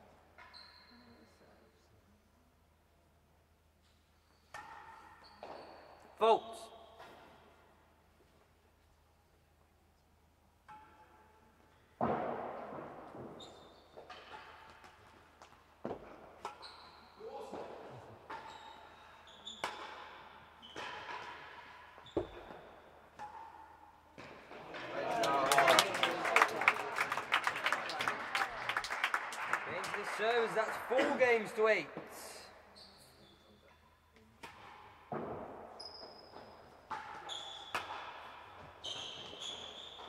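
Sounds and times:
applause: 0:24.8 - 0:31.8.

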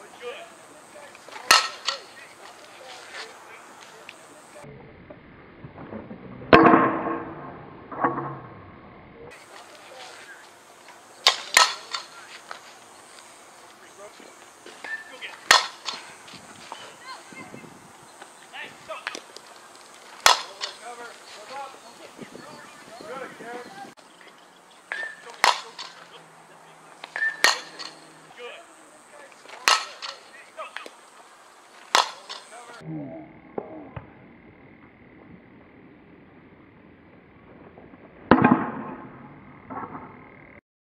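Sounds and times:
softball bat hitting ball: 0:01.2 - 0:02.8, 0:06.6 - 0:07.4, 0:11.2 - 0:12.5, 0:14.7 - 0:17.0, 0:20.2 - 0:21.1, 0:24.9 - 0:26.2, 0:27.0 - 0:28.4, 0:29.3 - 0:31.0, 0:31.9 - 0:32.8, 0:38.3 - 0:40.1.

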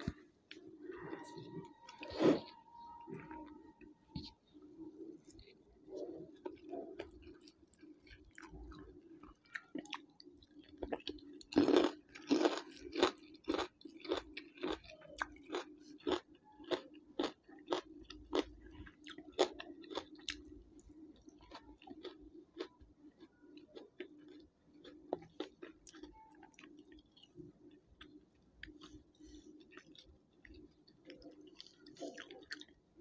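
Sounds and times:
chewing crunchy food: 0:00.0 - 0:33.0.

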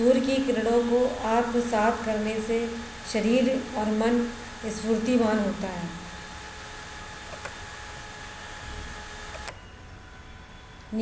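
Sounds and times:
faint high steady tones: 0:09.3 - 0:11.0.

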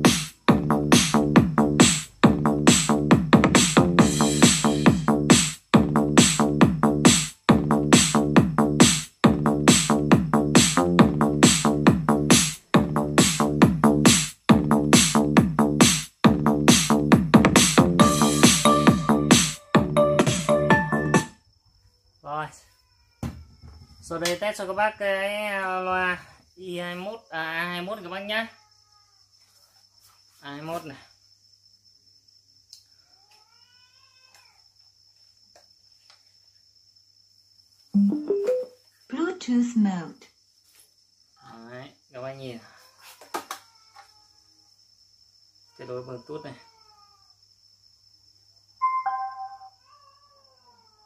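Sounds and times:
electronic dance music: 0:00.0 - 0:21.3.

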